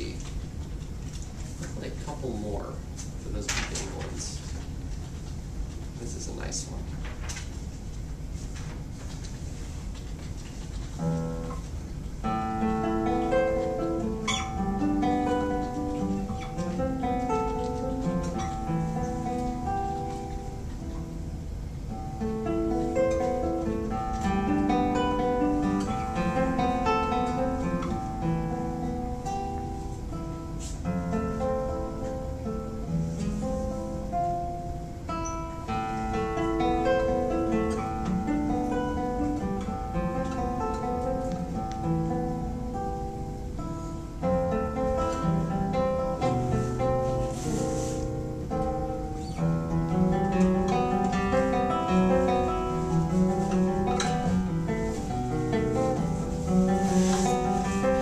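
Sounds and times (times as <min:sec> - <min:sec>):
fingerstyle classical guitar: 0:08.4 - 0:58.0.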